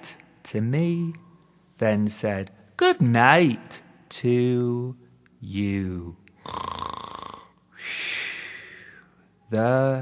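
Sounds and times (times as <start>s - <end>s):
rattling cartoon snore: 6.4s - 7.5s.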